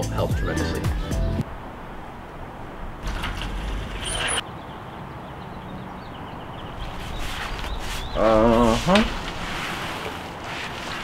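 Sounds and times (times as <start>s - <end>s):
sliding glass door rolling on track: 3.0s - 4.4s.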